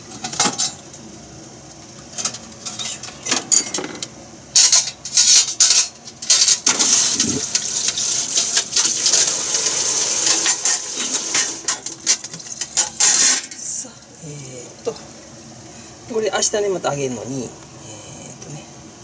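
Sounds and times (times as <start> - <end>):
metal kitchenware clattering: 2.2 - 4.0, 4.6 - 7.7, 10.2 - 13.6
steady high hiss: 6.8 - 12.1.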